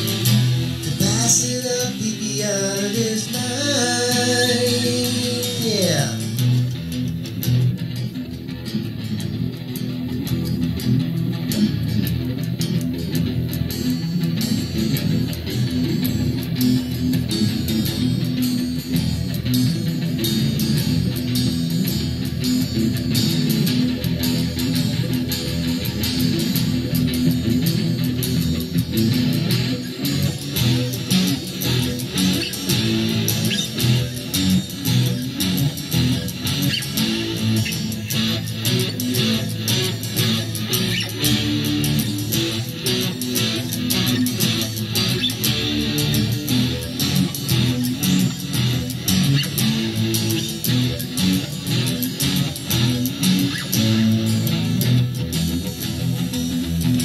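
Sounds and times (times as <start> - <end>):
bass: 0.0 - 57.0
guitar playing: 0.0 - 57.0.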